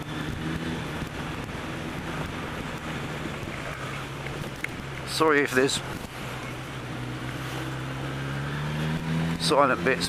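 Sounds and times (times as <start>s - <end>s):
wind rushing over microphone: 0.0s - 9.4s
motorcycle engine running: 0.0s - 10.0s.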